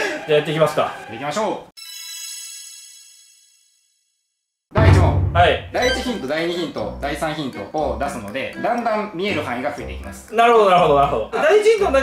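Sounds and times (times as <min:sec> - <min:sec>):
loud sudden sound: 0:04.8 - 0:06.2
bright chime ringing: 0:05.7 - 0:06.4.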